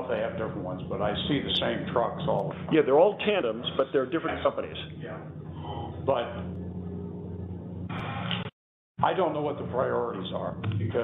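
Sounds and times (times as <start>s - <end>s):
low electrical hum and hiss: 0.0s - 8.2s, 9.0s - 11.0s.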